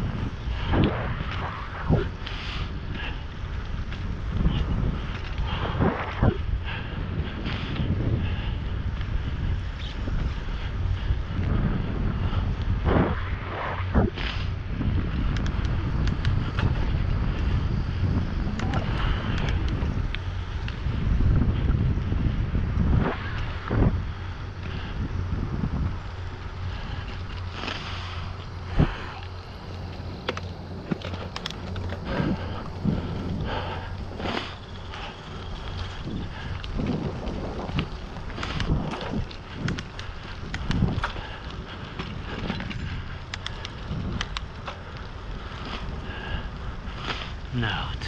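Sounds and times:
tyres rumbling on rough pavement: 0:00.0 - 0:48.0
wind buffeting microphone: 0:00.0 - 0:48.0
sharp ticks: 0:14.2 - 0:21.0, 0:25.7 - 0:47.8.

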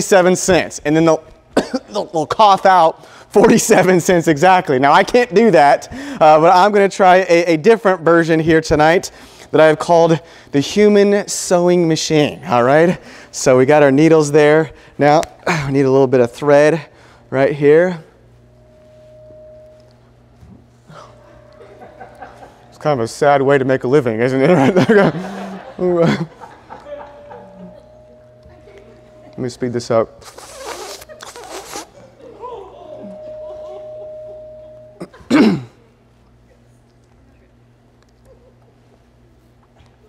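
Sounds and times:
low room noise: 0:00.0 - 0:40.0
faint steady tone: 0:18.3 - 0:23.0, 0:26.9 - 0:30.2, 0:32.8 - 0:35.2.

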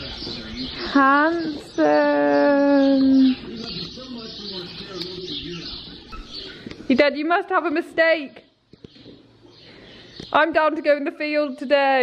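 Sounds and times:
low wavering bird calls: 0:00.0 - 0:07.0
birds chirping: 0:00.0 - 0:12.0.

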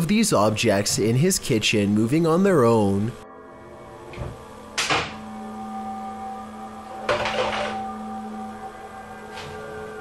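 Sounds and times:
steady hum of held tones: 0:00.0 - 0:10.0.

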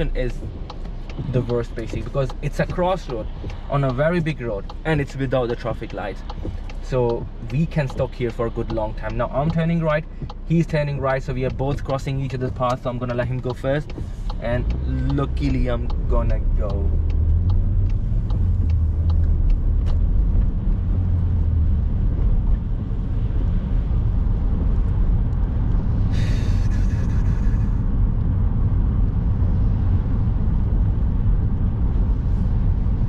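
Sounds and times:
car engine and tyre rumble: 0:00.0 - 0:33.0.

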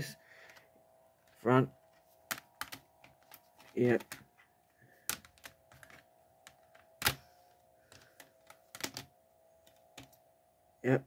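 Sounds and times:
faint steady hum: 0:00.0 - 0:11.0
plastic cases clicking: 0:02.3 - 0:04.3, 0:05.0 - 0:07.3, 0:07.9 - 0:09.1.

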